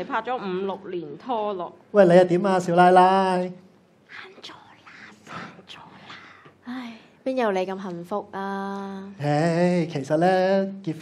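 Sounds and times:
faint whispering: 0:04.1 - 0:07.1.

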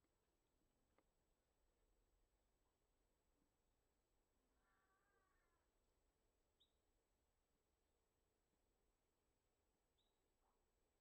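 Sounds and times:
faint mewing animal call: 0:04.5 - 0:05.7.

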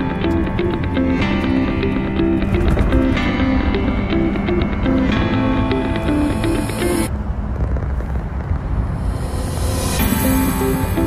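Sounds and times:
bus engine and road noise: 0:00.0 - 0:11.0.

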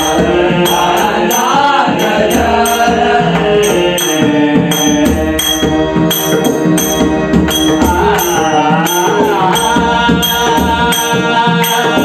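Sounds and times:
harmonium chords: 0:00.0 - 0:12.0
man singing: 0:07.7 - 0:12.0.

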